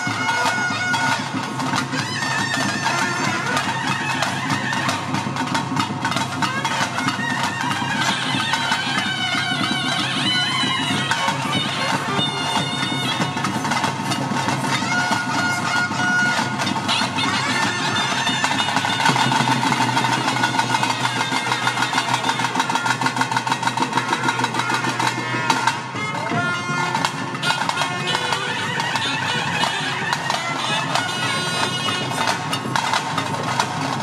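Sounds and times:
double-reed pipe melody: 0:00.0 - 0:34.0
fast steady drumming: 0:00.0 - 0:34.0.

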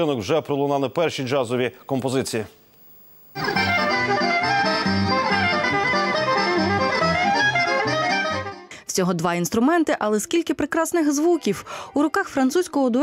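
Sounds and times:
button accordion playing jazz: 0:03.4 - 0:08.7.

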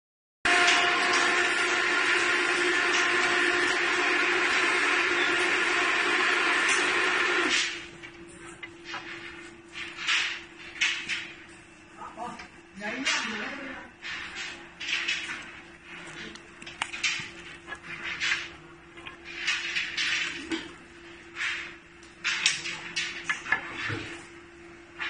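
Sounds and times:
workshop machinery humming and whining: 0:00.4 - 0:25.0.

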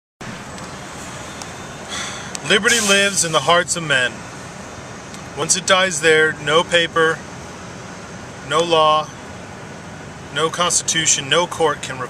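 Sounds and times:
road and engine noise in cabin: 0:00.2 - 0:12.0.

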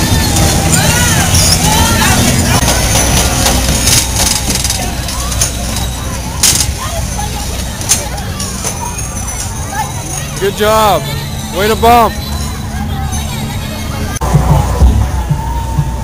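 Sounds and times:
bumper car ride hum: 0:00.0 - 0:16.0
bumper cars knocking: 0:00.0 - 0:16.0
children's voices: 0:00.0 - 0:16.0
crowd chatter: 0:00.0 - 0:16.0.

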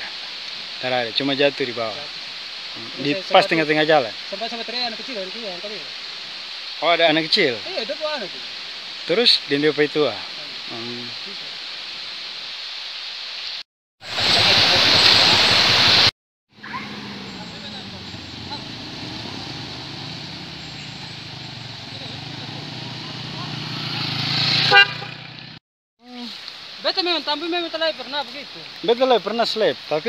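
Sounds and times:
traffic on wet road: 0:14.1 - 0:25.6
short horn toot: 0:24.6 - 0:25.4.

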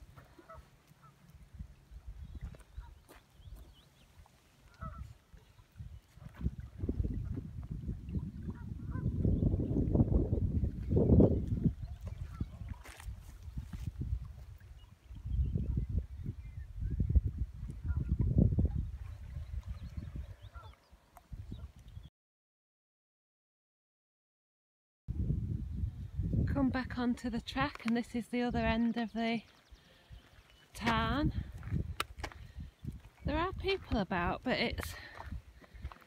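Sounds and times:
wind buffeting microphone: 0:01.4 - 0:03.8, 0:04.8 - 0:22.1, 0:25.1 - 0:28.8, 0:29.6 - 0:36.0.

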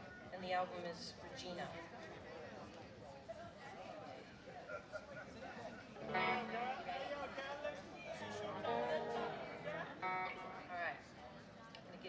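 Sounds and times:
electric guitar: 0:06.0 - 0:06.9, 0:08.1 - 0:11.0.

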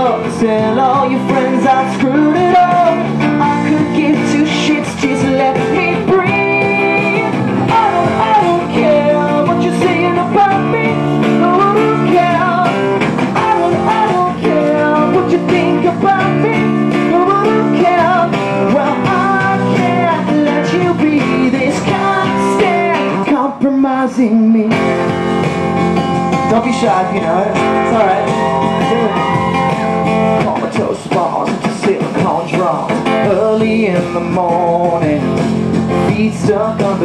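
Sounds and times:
man singing: 0:00.0 - 0:25.1, 0:26.4 - 0:37.0
strummed acoustic guitar: 0:00.0 - 0:37.0.

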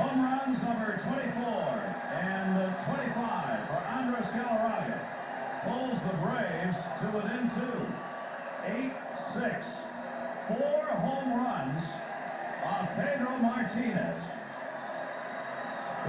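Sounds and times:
man commentating through tv speaker: 0:00.0 - 0:14.6.

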